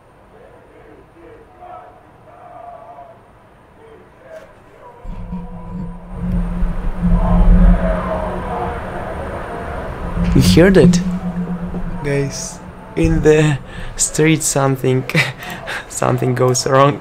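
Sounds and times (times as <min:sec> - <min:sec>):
deep street rumble: 0:05.1 - 0:15.4.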